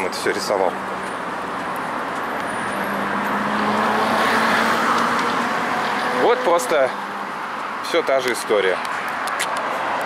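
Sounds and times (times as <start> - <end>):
vehicle passing: 0.6 - 8.0.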